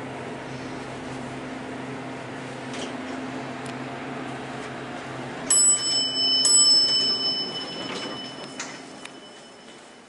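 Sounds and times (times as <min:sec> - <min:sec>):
elevator chime dings: 0:05.4 - 0:10.0.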